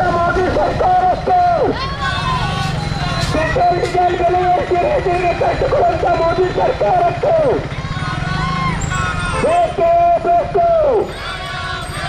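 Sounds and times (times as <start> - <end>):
man shouting slogan: 0.0 - 1.8, 3.3 - 8.2, 9.0 - 11.9
faint voices: 0.0 - 12.0.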